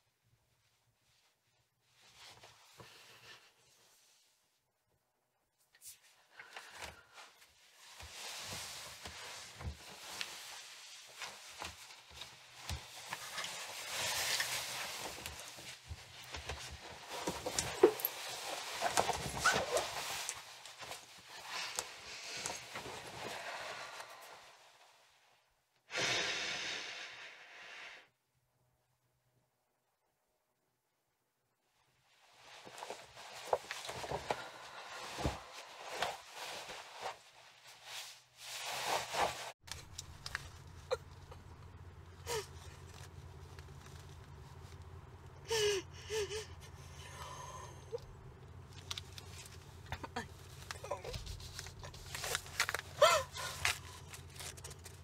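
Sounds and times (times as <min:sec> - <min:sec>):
jacket fabric rustling: 0:05.9 - 0:25.3, 0:32.0 - 0:45.2
woman sobbing and whimpering: 0:42.2 - 0:42.7, 0:45.4 - 0:48.0, 0:52.9 - 0:53.8.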